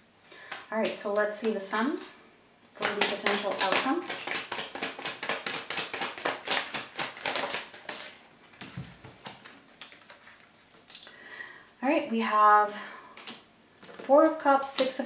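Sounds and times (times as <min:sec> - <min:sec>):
cards handled on wooden table: 0:02.8 - 0:10.9, 0:13.2 - 0:14.1
cards being shuffled: 0:02.8 - 0:11.0, 0:13.2 - 0:15.0.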